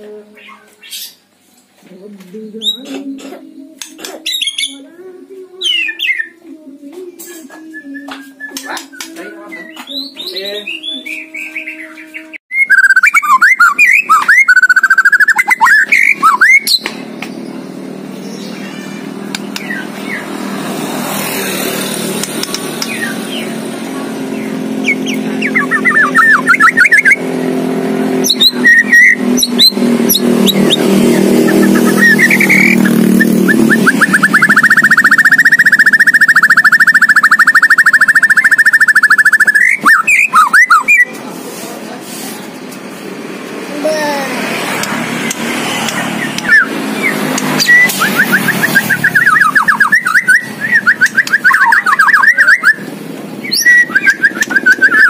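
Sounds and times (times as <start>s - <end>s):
bird singing whistled phrases: 8.0s - 16.9s, 24.8s - 27.2s, 28.2s - 41.1s, 46.2s - 55.0s
bird rapid trill: 12.6s - 16.9s, 24.3s - 27.2s, 28.2s - 41.1s, 45.8s - 52.8s, 53.4s - 55.0s
low engine hum: 15.8s - 51.5s.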